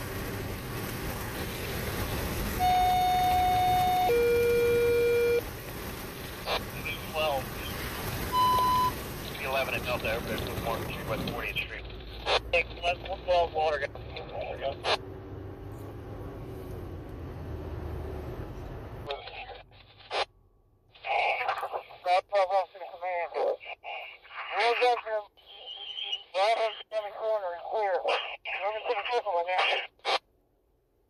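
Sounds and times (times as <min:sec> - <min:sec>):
road noise inside moving car: 0:00.0 - 0:20.9
radio voices over scanner: 0:06.4 - 0:07.8, 0:08.4 - 0:15.0, 0:19.0 - 0:20.3, 0:21.0 - 0:30.2.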